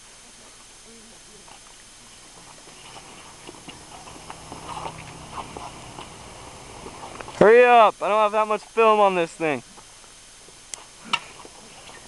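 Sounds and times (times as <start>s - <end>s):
faint scuffling: 1.4s - 7.5s.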